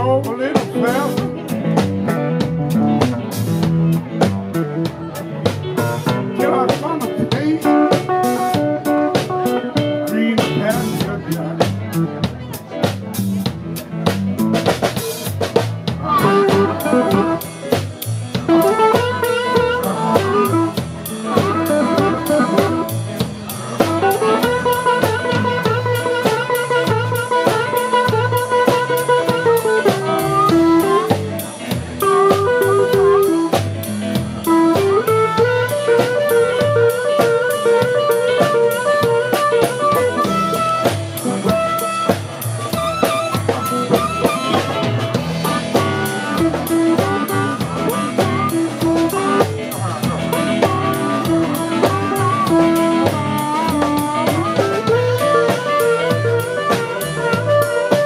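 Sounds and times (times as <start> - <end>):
drum kit: 0.0 - 58.0
upright bass: 0.0 - 58.0
harmonica melody: 16.0 - 58.0.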